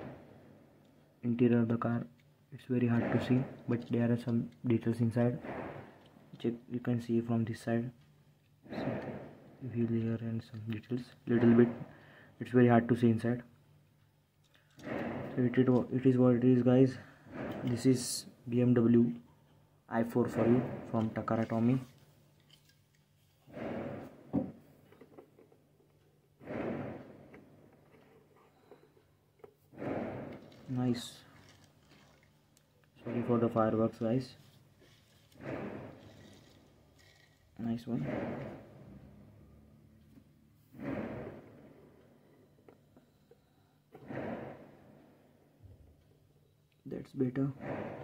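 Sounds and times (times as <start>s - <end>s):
firework crack: 0.0s - 1.1s, 2.6s - 6.6s, 8.7s - 9.9s, 11.2s - 13.0s, 14.8s - 16.2s, 17.2s - 18.3s, 20.0s - 22.0s, 23.4s - 24.8s, 26.4s - 27.8s, 29.7s - 39.3s, 40.7s - 42.3s, 44.0s - 45.6s, 47.6s - 48.0s
fireworks booming: 0.0s - 1.6s, 2.6s - 7.0s, 8.6s - 10.1s, 11.2s - 13.3s, 14.8s - 19.1s, 20.0s - 21.9s, 23.4s - 24.9s, 26.4s - 28.0s, 29.7s - 32.2s, 32.9s - 39.7s, 40.6s - 42.6s, 43.9s - 45.6s, 47.4s - 48.0s.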